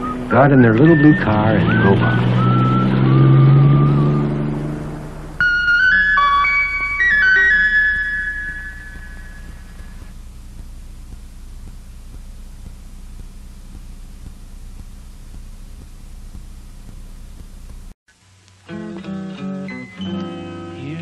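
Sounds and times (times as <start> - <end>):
flute-like musical sting: 0.0 - 4.5, 5.4 - 10.1
cartoon car engine drone: 0.0 - 10.1
faint steady hum: 5.2 - 21.0.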